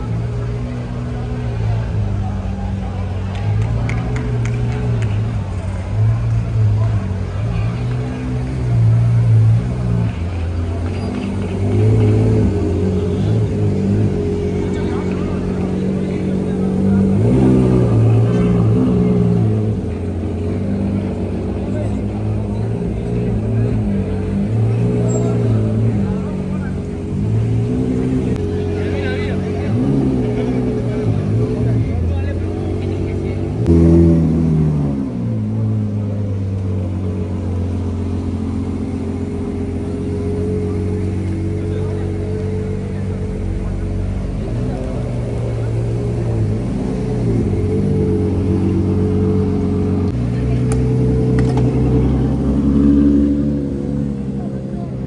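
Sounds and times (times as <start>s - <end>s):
car engine revving at low speed: 0.0s - 55.0s.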